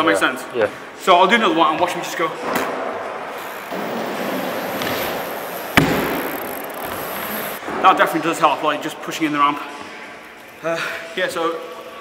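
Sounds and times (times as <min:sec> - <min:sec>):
bike tyres rolling on wooden ramps: 0:03.3 - 0:07.6
sharp knock: 0:05.8 - 0:06.4.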